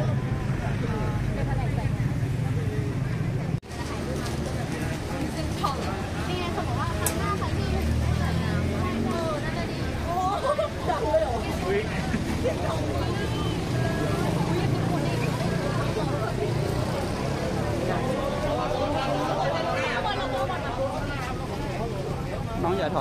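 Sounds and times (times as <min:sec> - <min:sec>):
people chatting: 0:00.0 - 0:23.0.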